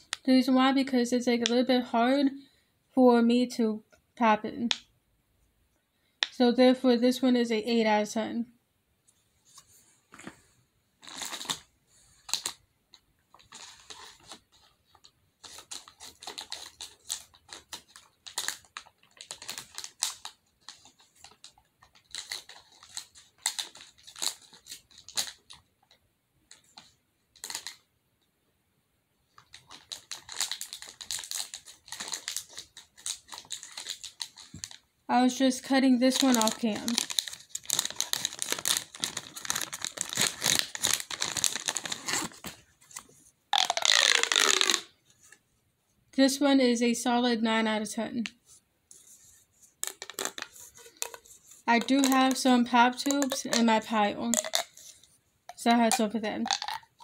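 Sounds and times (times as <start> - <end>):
plastic toys clicking and tapping: 49.8 - 57.0.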